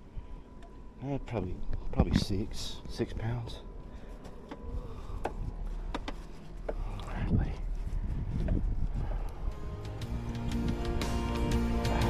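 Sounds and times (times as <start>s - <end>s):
wind rumble on microphone: 1.2s - 11.2s.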